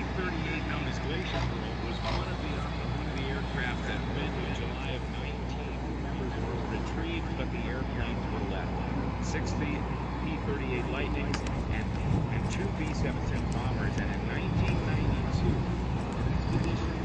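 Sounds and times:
indistinct voices: 0.0 - 17.0
propeller plane engines droning: 0.0 - 17.0.

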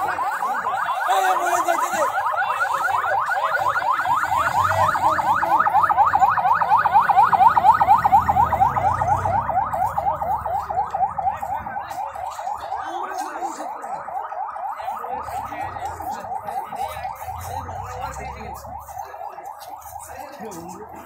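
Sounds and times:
ambulance siren yelping: 0.0 - 21.0.

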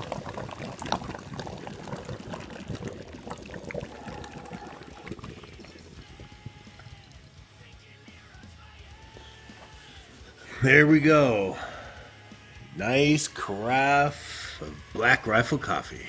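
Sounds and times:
coffee trickling into carafe: 0.0 - 7.4.

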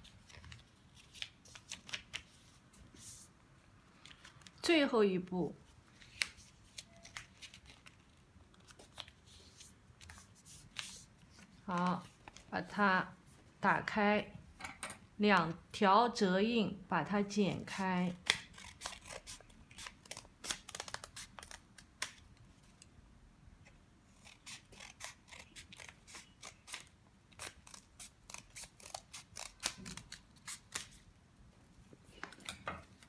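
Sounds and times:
scissors snipping paper: 18.1 - 22.2, 24.2 - 31.0.

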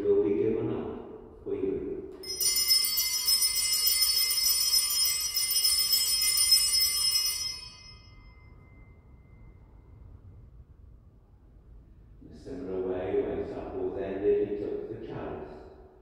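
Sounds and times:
altar bells jingling: 2.2 - 9.1
man's voice: 12.2 - 15.6.

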